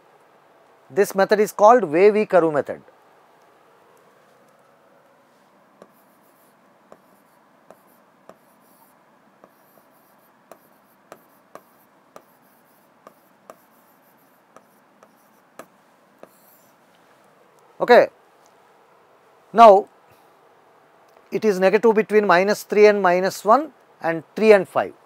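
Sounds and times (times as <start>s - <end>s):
marker pen writing on whiteboard: 5.8s - 16.9s.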